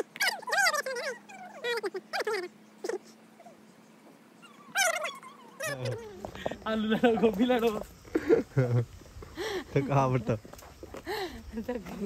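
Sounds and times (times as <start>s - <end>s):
animal whining call: 0.0s - 6.4s.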